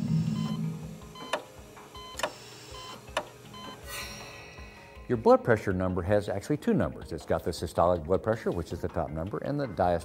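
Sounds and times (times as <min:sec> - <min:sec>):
low drone: 0:00.0 - 0:01.0
short electronic beeps: 0:00.1 - 0:01.4
sharp hits: 0:03.9 - 0:05.3.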